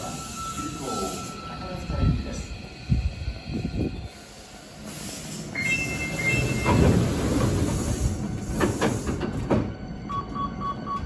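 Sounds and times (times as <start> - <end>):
train wheel squeals: 0.0 - 2.5, 5.1 - 10.4
electric train rolling: 0.0 - 11.0
music with pulsing beep: 9.9 - 11.0.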